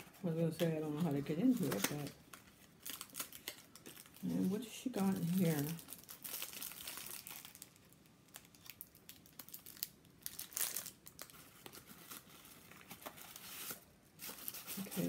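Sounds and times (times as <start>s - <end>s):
tissue paper crinkling and rustling: 0.0s - 15.0s.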